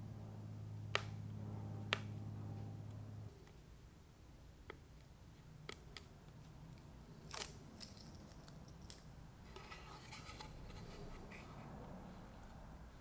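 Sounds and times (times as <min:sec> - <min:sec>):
tape backing crinkling and peeling: 0:05.6 - 0:11.5.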